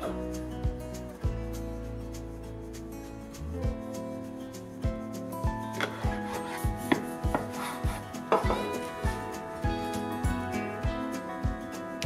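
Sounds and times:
background music with beat: 0:00.0 - 0:12.0
knife knocking on wooden board: 0:06.8 - 0:07.6, 0:08.3 - 0:08.8.

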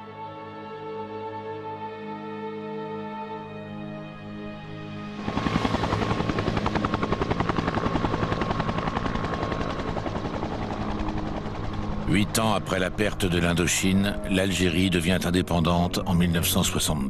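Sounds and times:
helicopter rotor chopping: 0:05.1 - 0:14.0
held music chord: 0:08.4 - 0:16.6.

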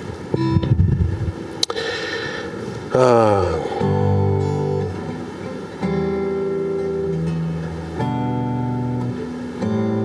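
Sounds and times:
acoustic guitar notes: 0:00.0 - 0:10.0.

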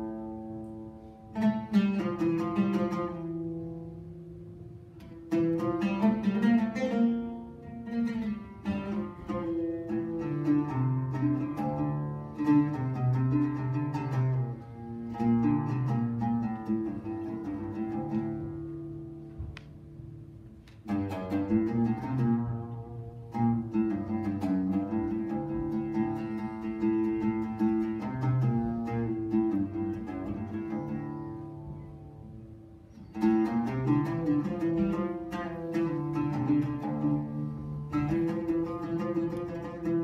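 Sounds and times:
solo oud melody: 0:00.0 - 0:40.0.

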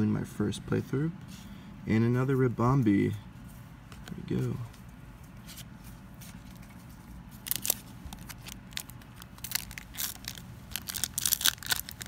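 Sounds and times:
foil wrapper crinkling: 0:07.4 - 0:12.0
foil wrapper tearing: 0:07.4 - 0:12.0.

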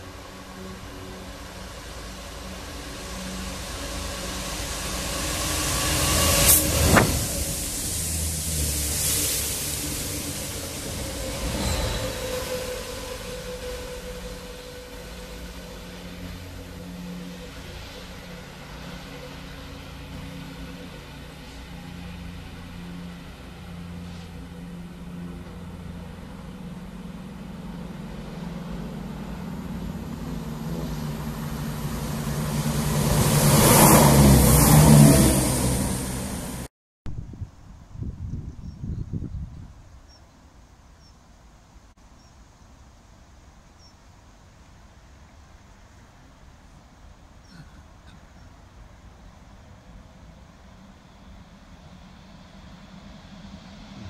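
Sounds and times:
diesel locomotive engine working hard: 0:00.0 - 0:36.7, 0:44.8 - 0:54.0
train wheel noise: 0:00.0 - 0:36.7.

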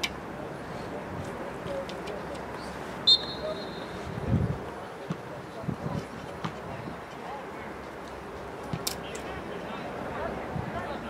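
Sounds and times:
distant players' voices: 0:00.1 - 0:11.0.

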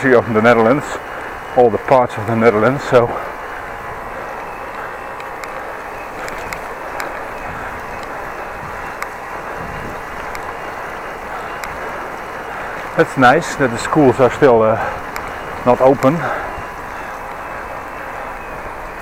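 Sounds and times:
tyres rolling on wet pavement: 0:00.0 - 0:19.0
faint ticks: 0:03.2 - 0:13.0, 0:14.4 - 0:18.7
wind rushing: 0:03.3 - 0:18.9.

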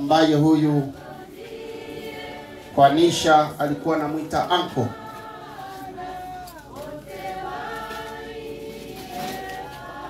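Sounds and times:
choir singing long notes: 0:00.9 - 0:10.0.

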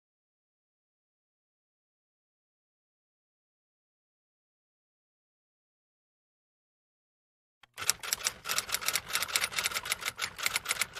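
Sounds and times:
typewriter keystroke clicks: 0:07.6 - 0:10.9.

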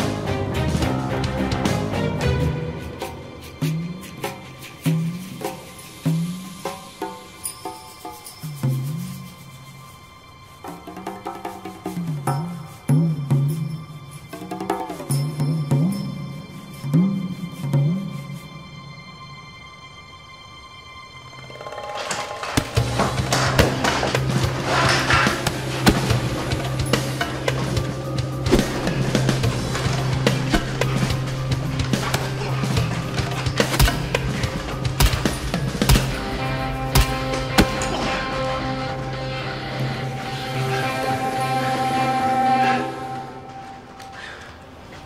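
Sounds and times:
tense soundtrack music: 0:00.0 - 0:45.0
low drone: 0:16.4 - 0:44.8
fistfight hits and thuds: 0:25.4 - 0:27.1, 0:31.9 - 0:36.3.

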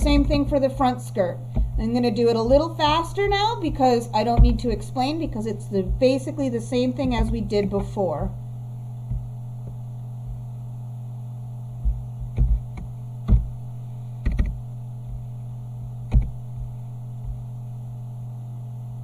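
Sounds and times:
electrical mains hum: 0:00.0 - 0:19.0
keyboard and mouse clicks: 0:14.2 - 0:14.6, 0:16.1 - 0:16.3.

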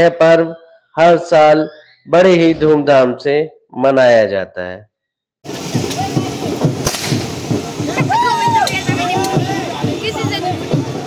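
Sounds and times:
street ambience: 0:05.4 - 0:11.0
low regular thudding: 0:05.5 - 0:11.0
sharp crack: 0:05.7 - 0:08.0.

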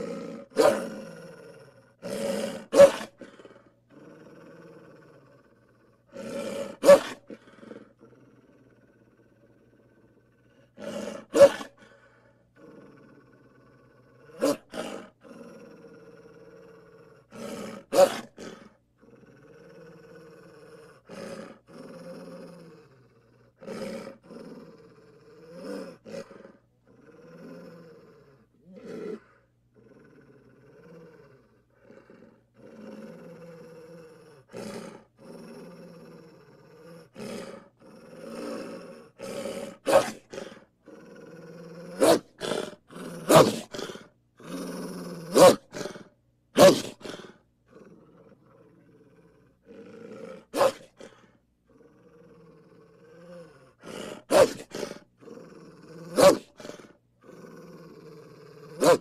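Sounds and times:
wolf growling and snarling: 0:00.0 - 0:59.0.

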